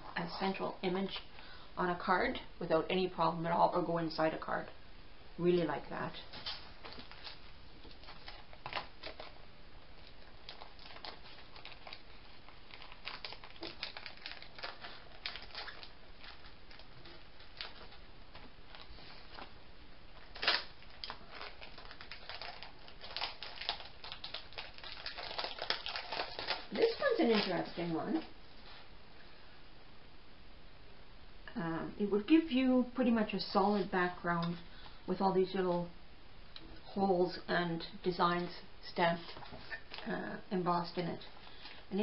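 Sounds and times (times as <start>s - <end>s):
plastic packaging crinkling: 6.2s - 9.4s, 10.0s - 28.3s.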